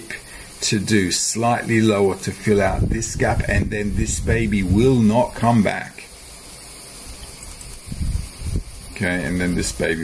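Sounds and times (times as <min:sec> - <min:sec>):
high-pitched microphone hiss: 0:00.0 - 0:10.0.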